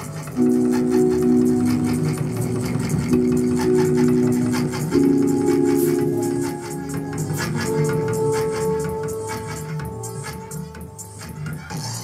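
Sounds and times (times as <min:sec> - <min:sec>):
fast ticking rhythm: 0:00.0 - 0:12.0
sustained synthesizer chords: 0:00.0 - 0:12.0.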